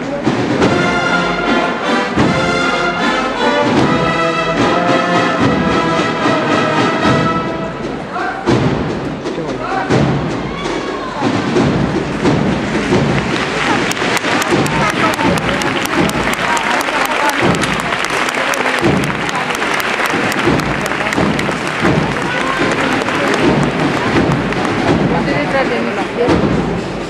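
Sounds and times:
brass band playing a march: 0.0s - 10.4s, 11.2s - 26.9s
crowd voices and shouts: 0.0s - 27.0s
crowd applauding: 12.1s - 26.3s.

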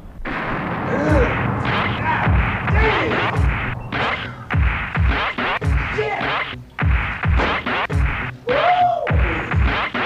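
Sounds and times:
heavy drum hits: 0.6s - 8.1s
hip hop beat with samples: 1.1s - 10.0s
swooping pitch glides: 1.2s - 5.8s.

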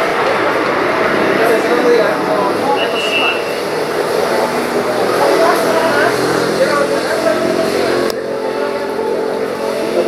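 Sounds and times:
people talking indistinctly: 0.3s - 10.0s.

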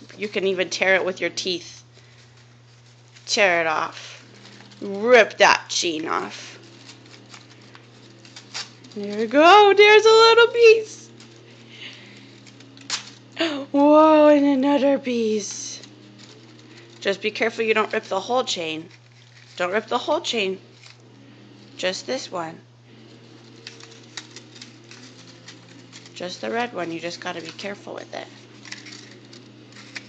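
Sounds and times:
paper tearing: 0.0s - 13.4s, 15.1s - 22.2s, 22.9s - 30.0s
small paper ticks: 23.2s - 30.0s.

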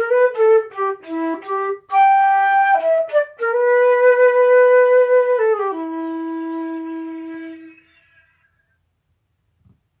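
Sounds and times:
flute holding a low note: 0.0s - 8.4s.

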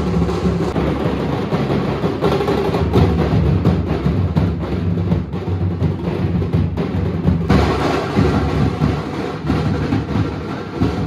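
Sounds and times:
dhol drums beaten fast: 0.0s - 11.0s.

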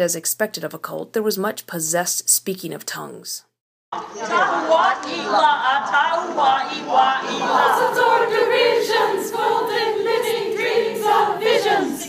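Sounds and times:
women's chorus singing a cappella: 4.0s - 12.0s.

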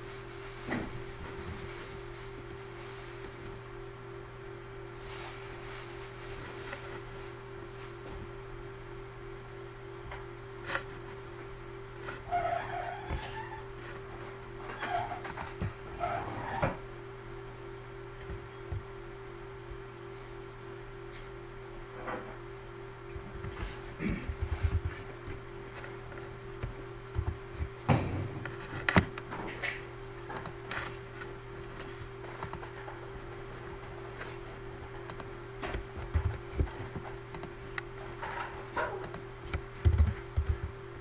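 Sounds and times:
low electrical hum: 0.0s - 41.0s.

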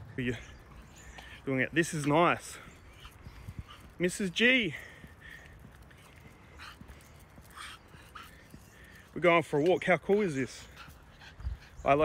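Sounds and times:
dog panting: 0.3s - 12.0s.

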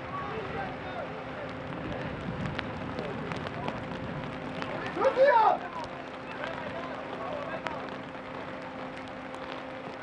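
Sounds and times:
rain hissing on grass: 0.0s - 10.0s.

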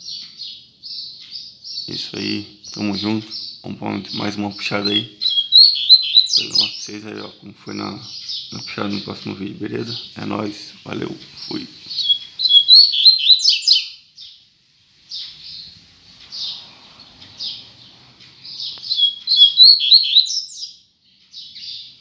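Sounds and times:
soft bird chirps: 0.0s - 22.0s
bird singing high sliding notes: 1.8s - 7.2s, 11.0s - 14.0s, 15.1s - 20.7s.

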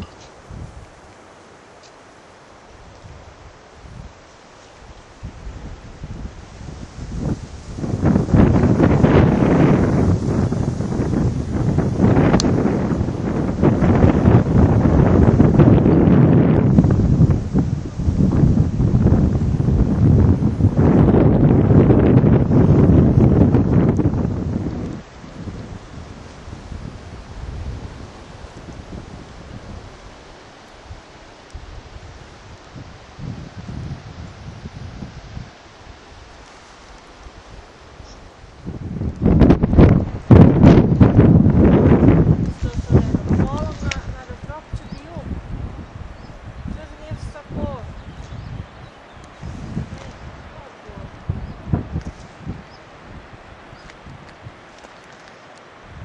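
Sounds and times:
wind buffeting microphone: 0.0s - 1.7s, 2.5s - 56.0s
steady rush of wind: 0.0s - 56.0s.

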